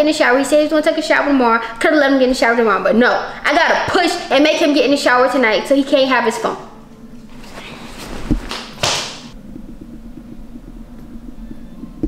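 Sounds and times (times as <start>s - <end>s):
low steady hum: 9.3s - 12.0s.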